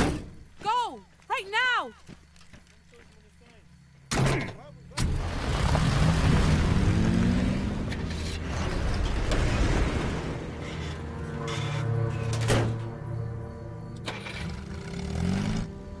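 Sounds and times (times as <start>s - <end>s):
jeep and truck engines: 4.8s - 16.0s.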